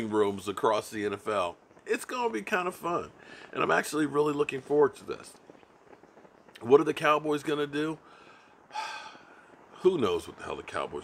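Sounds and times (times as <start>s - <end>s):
man speaking: 0.0s - 5.4s, 6.6s - 8.0s, 9.8s - 11.0s
man breathing in through mouth: 8.0s - 9.6s.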